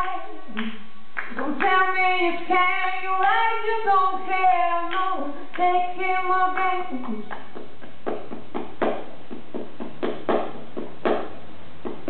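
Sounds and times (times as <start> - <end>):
woman singing without words: 0.0 - 7.4.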